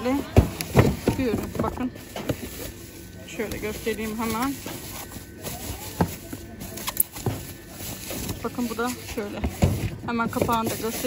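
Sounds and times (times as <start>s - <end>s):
wrapping sheet rustling: 0.2s - 11.0s.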